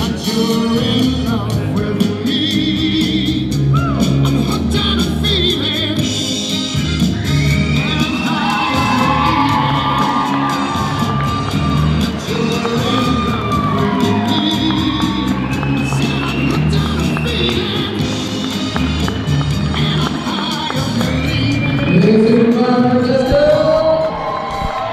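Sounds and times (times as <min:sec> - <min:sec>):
recorded song playing: 0:00.0 - 0:24.9
guests whooping and cheering: 0:06.8 - 0:24.9.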